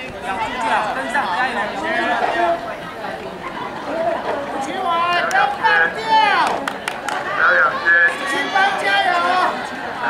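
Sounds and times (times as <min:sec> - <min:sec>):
people chattering and calling out: 0:00.0 - 0:10.0.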